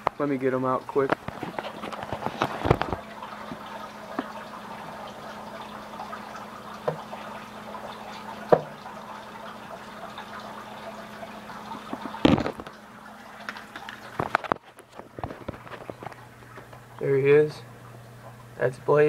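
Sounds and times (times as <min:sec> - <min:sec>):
knocks and clicks in a tank: 0:01.0 - 0:04.4, 0:06.8 - 0:07.2, 0:08.4 - 0:08.8.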